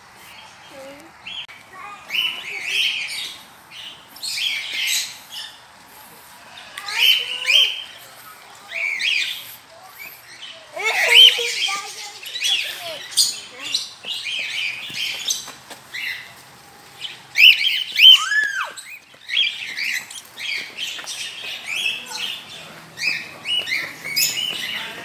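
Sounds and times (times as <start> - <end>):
birds chirping: 0.0 - 25.0.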